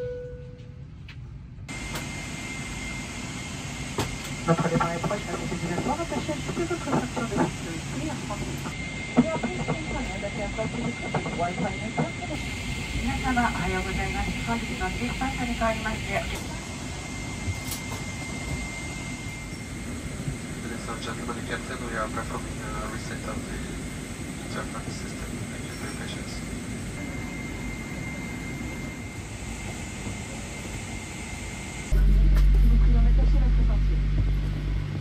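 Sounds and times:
airliner cabin engine noise: 0.0s - 35.0s
announcement voice over pa: 4.4s - 8.3s.

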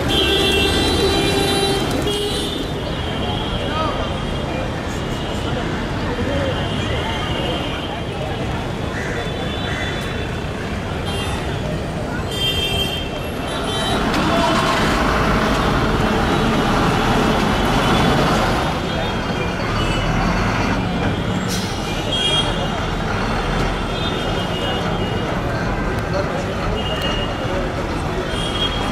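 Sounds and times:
bus passing: 0.0s - 3.2s, 13.3s - 28.9s
city street traffic: 0.0s - 28.9s
people's voices: 0.0s - 28.9s.

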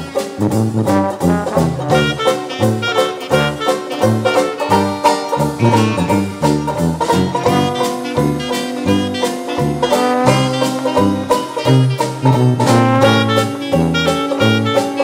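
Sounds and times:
ragtime instrumental music: 0.0s - 15.0s.

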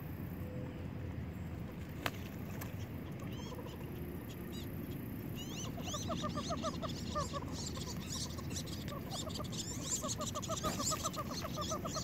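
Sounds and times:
ducks whistling: 5.4s - 12.0s.

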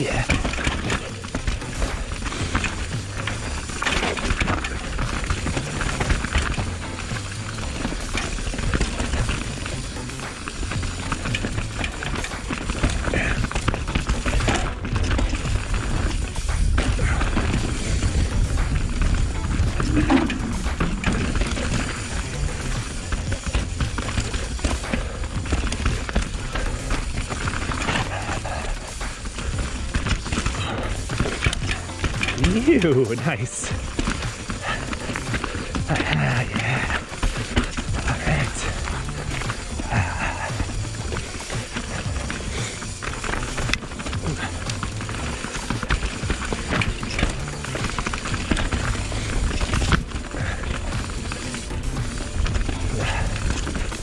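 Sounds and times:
bike rattling over bumps: 0.0s - 54.0s
tyres rolling over dirt: 0.0s - 54.0s.

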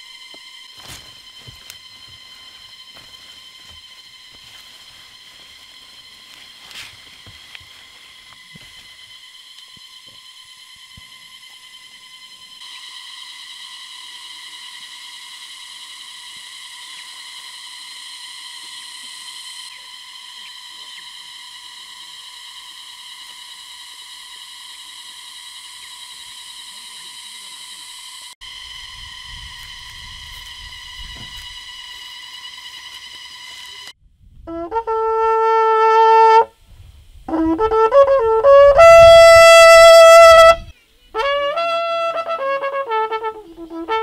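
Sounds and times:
insects buzzing chorus: 0.0s - 34.0s, 34.7s - 44.0s.

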